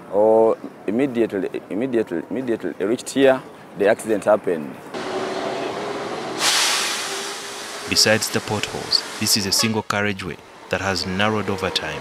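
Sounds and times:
steady whine: 0:05.0 - 0:09.6
air brakes hissing: 0:05.0 - 0:09.8
heavy truck traffic: 0:05.0 - 0:12.0.

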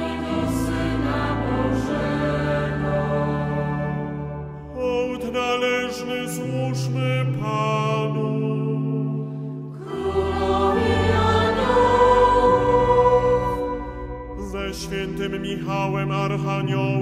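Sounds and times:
choir singing held chords: 0:00.0 - 0:17.0.

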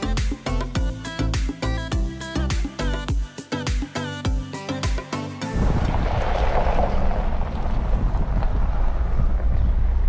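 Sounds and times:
wind buffeting microphone: 0:05.5 - 0:10.0
engine and tyres rumbling: 0:05.6 - 0:10.0.

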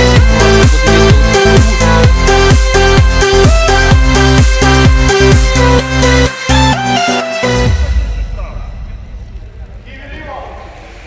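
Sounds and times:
music: 0:00.0 - 0:11.0
low steady rumble: 0:08.0 - 0:11.0.

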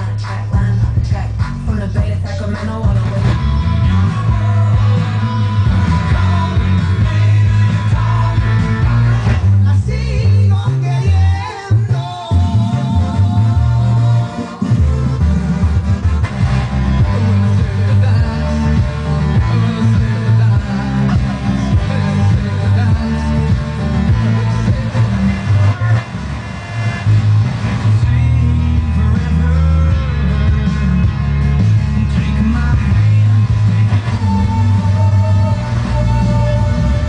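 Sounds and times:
loud rock music with singing: 0:00.0 - 0:37.0.

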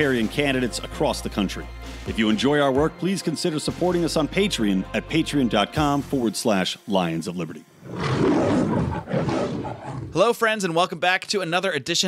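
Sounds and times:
lion roaring: 0:07.8 - 0:10.2.

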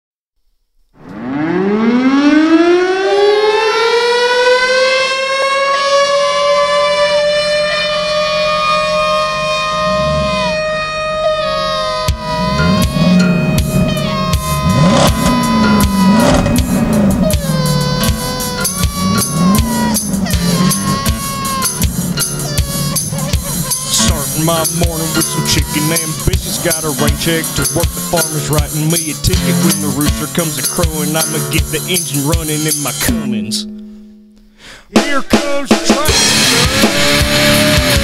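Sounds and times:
siren-like wail: 0:01.0 - 0:30.5
low bending notes: 0:01.0 - 0:34.5, 0:36.1 - 0:38.0.

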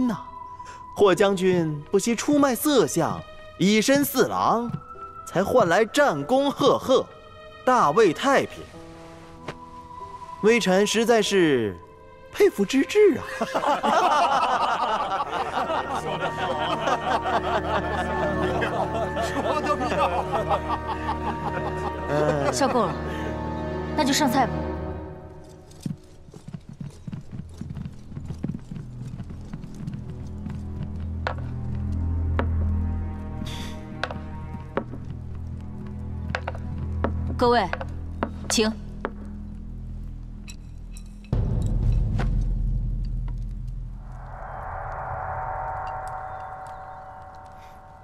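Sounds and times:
soft background music: 0:00.0 - 0:43.5
footsteps on wooden floor: 0:34.0 - 0:39.3
deep drum hit: 0:41.4 - 0:44.1
eerie gong-like tone: 0:42.9 - 0:48.0.

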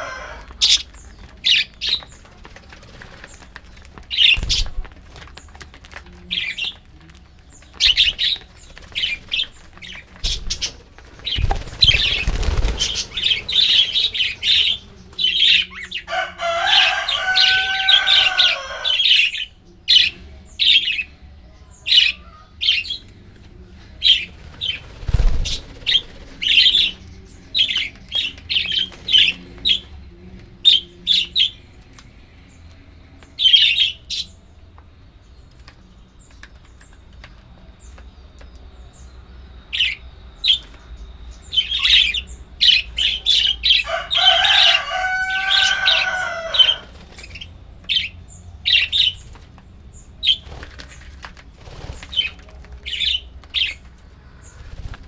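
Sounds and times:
budgerigars chirping: 0:00.0 - 0:02.3, 0:04.1 - 0:04.9, 0:07.4 - 0:21.1, 0:24.0 - 0:29.9, 0:41.4 - 0:49.3
flurry of wingbeats: 0:00.1 - 0:18.8, 0:23.4 - 0:32.0, 0:43.8 - 0:48.0, 0:48.7 - 0:55.0.

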